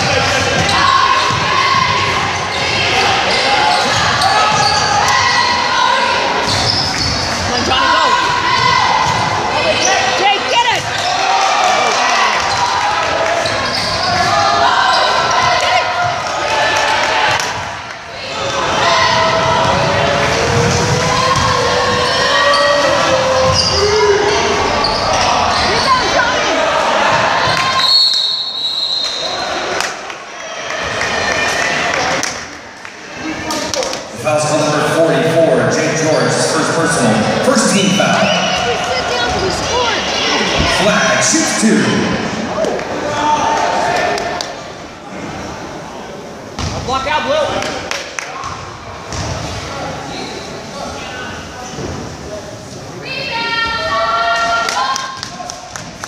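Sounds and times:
crowd shouting: 7.5s - 32.2s, 37.9s - 44.4s.

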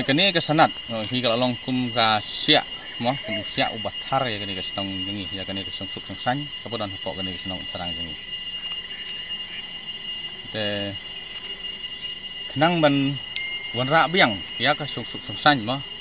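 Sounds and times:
man speaking: 0.0s - 8.2s
high-pitched tones whining: 0.0s - 16.0s.

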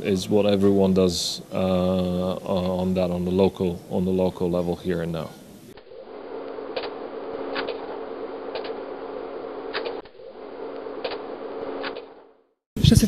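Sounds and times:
low hum and hiss: 0.0s - 13.0s
sharp clicks: 6.5s - 8.8s, 9.7s - 10.2s, 10.8s - 12.2s.

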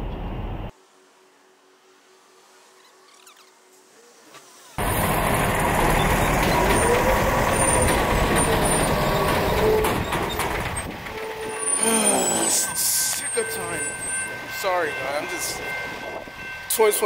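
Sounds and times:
truck engine and road rumble: 0.0s - 0.7s, 2.0s - 16.7s.

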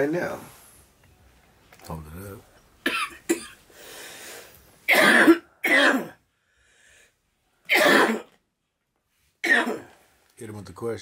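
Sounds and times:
man coughing: 2.8s - 3.6s, 4.9s - 6.2s, 7.7s - 8.4s, 9.4s - 9.9s.

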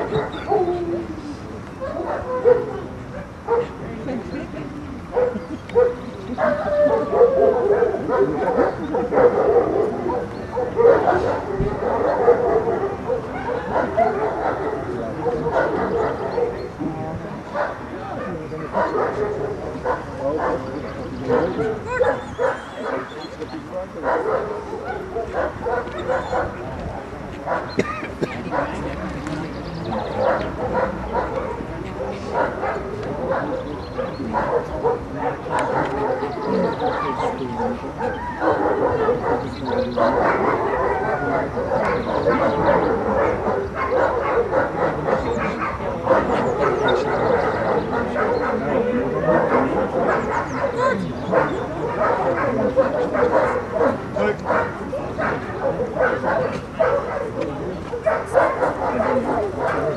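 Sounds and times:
dog barking: 1.8s - 3.8s, 5.1s - 16.7s, 17.5s - 23.1s, 24.0s - 26.6s, 27.5s - 28.8s, 29.9s - 59.9s.

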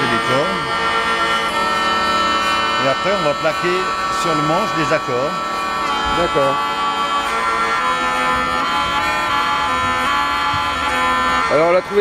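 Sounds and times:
bowed string drone: 0.0s - 12.0s.

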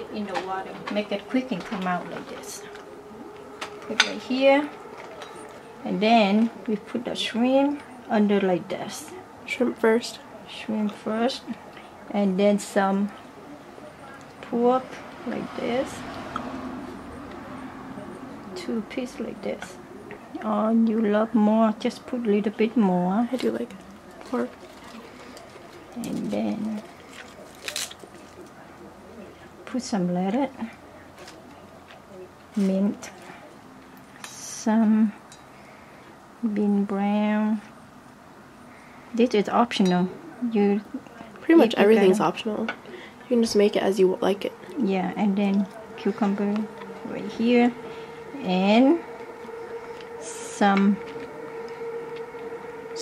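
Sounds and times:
steady hum: 0.0s - 31.0s, 32.3s - 53.0s.

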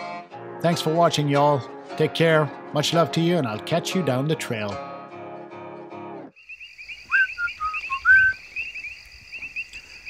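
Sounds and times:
music: 0.0s - 6.3s
frogs trilling chorus: 6.3s - 10.0s
short whistled notes: 7.1s - 8.4s.

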